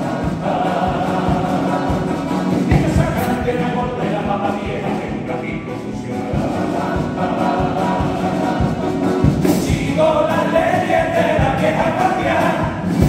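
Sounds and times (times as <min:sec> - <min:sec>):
bass drum beating: 0:00.0 - 0:13.0
male choir singing in harmony: 0:00.0 - 0:13.0
strummed guitars: 0:00.0 - 0:13.0.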